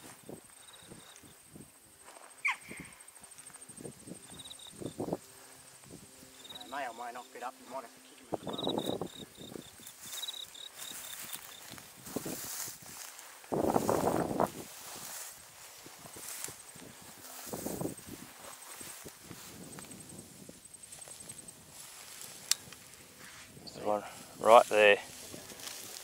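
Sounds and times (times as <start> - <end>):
footsteps through dry grass: 0.0 - 7.2, 8.4 - 26.0
high insect trill: 0.0 - 26.0.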